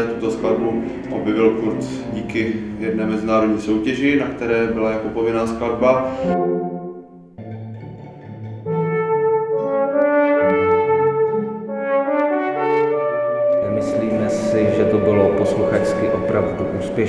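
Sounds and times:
man speaking: 0:00.0 - 0:06.4, 0:13.6 - 0:17.0
string quartet sustaining chords: 0:00.0 - 0:17.0
trombone playing slow melody: 0:06.1 - 0:07.4, 0:08.6 - 0:17.0.

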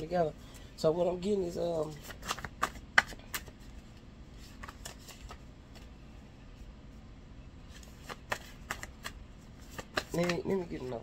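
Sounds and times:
cards snapping and riffling: 0:01.8 - 0:05.9, 0:07.7 - 0:11.0.

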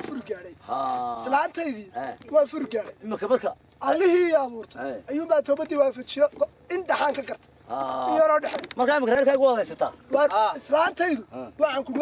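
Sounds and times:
men talking loudly: 0:00.0 - 0:12.0.

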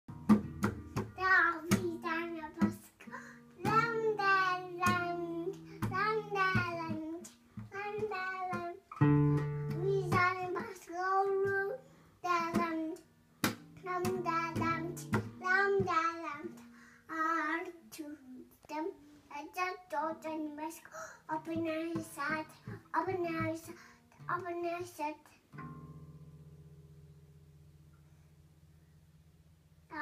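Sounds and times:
nylon-string guitar strumming: 0:00.1 - 0:02.9, 0:03.5 - 0:11.6, 0:13.4 - 0:16.6, 0:25.5 - 0:27.9
child singing: 0:01.0 - 0:25.4.

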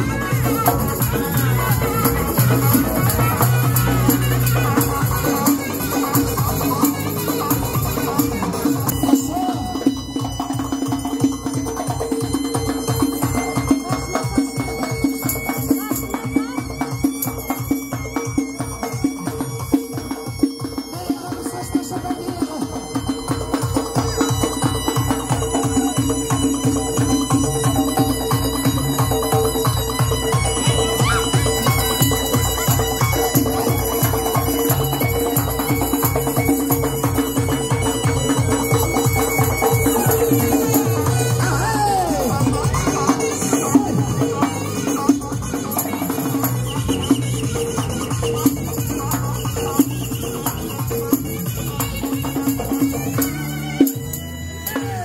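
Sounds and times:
frame drum beating quick rhythm: 0:00.0 - 0:55.0
wind instrument melody: 0:00.0 - 0:55.0.

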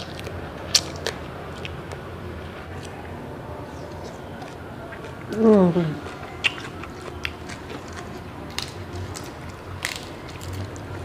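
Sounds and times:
chewing food: 0:00.0 - 0:02.0, 0:02.6 - 0:11.0.

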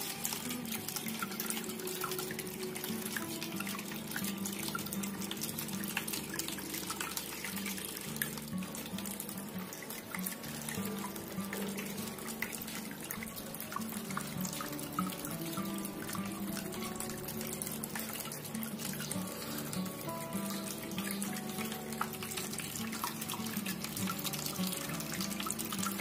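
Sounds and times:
background music: 0:00.0 - 0:26.0
fountain water splashing: 0:00.0 - 0:26.0.

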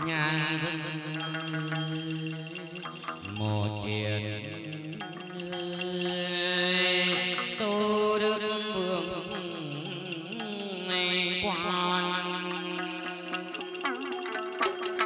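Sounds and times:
man chanting long held notes: 0:00.0 - 0:15.0.

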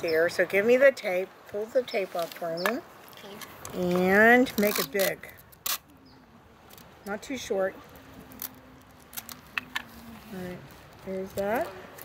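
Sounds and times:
adhesive tape tearing snap: 0:04.5 - 0:05.9.

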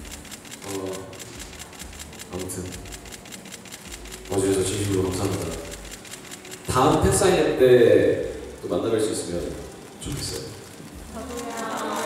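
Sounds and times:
camera shutters clicking: 0:00.0 - 0:07.4, 0:09.4 - 0:12.0
person speaking: 0:06.7 - 0:12.0.

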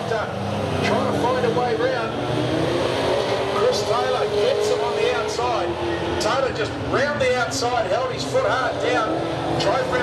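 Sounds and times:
racing car engines: 0:00.0 - 0:10.0.

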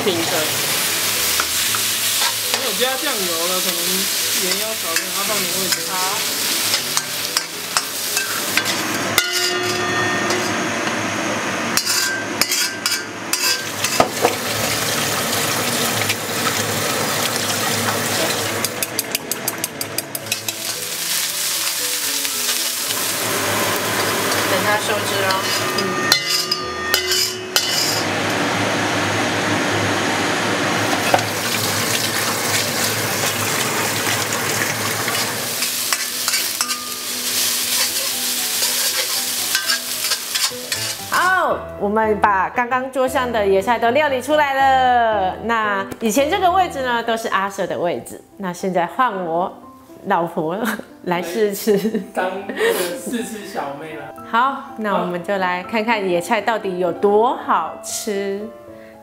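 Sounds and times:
greens sizzling in hot oil: 0:00.0 - 0:29.1, 0:29.7 - 0:41.4
metal spatula scraping pan: 0:04.1 - 0:10.8, 0:11.7 - 0:14.3, 0:19.6 - 0:22.7, 0:24.0 - 0:28.1, 0:35.5 - 0:41.1.

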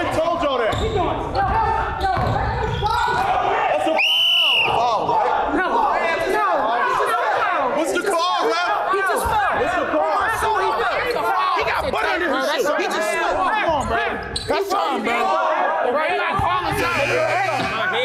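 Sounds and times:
players shouting and laughing: 0:00.0 - 0:18.0
referee whistle blast: 0:04.0 - 0:04.8.

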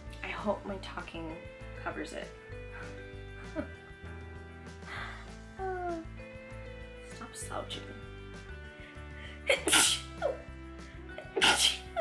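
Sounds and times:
background music: 0:00.0 - 0:12.0
woman sneezing: 0:09.5 - 0:10.3, 0:11.3 - 0:12.0.

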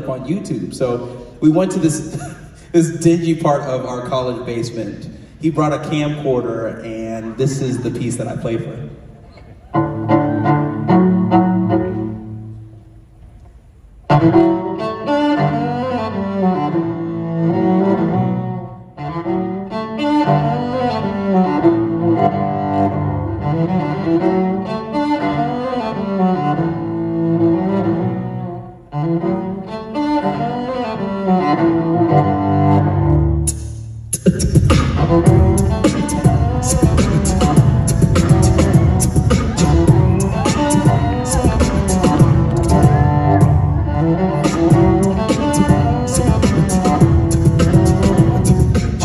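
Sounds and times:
solo cello playing: 0:09.5 - 0:13.0, 0:14.0 - 0:33.5, 0:34.9 - 0:49.0.

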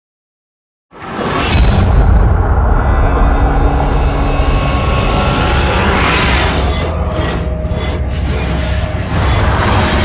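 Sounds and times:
deep rumble: 0:01.5 - 0:10.0.

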